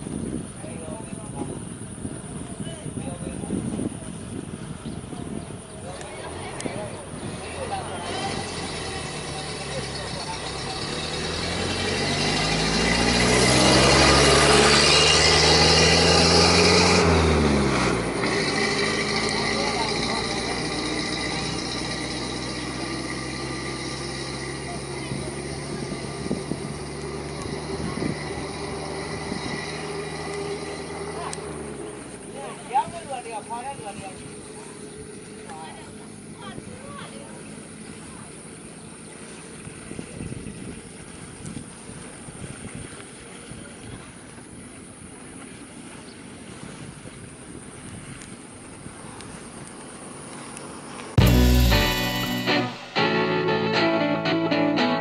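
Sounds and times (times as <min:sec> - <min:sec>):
motor engine running: 0:00.5 - 0:40.8.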